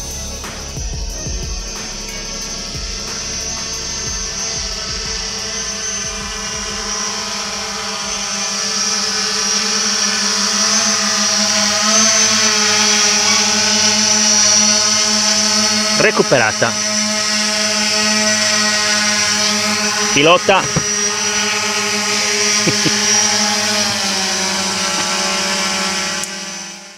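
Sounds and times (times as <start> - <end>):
background music: 0.0 - 8.3
drone propellers whining: 0.0 - 26.9.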